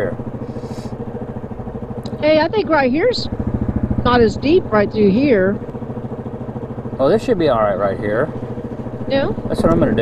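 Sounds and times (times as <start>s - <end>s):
atv engine idling: 0.0s - 10.0s.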